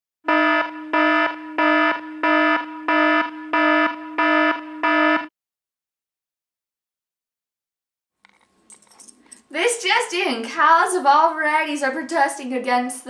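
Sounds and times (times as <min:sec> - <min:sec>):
pulsing electronic alarm tone: 0:00.2 - 0:05.3.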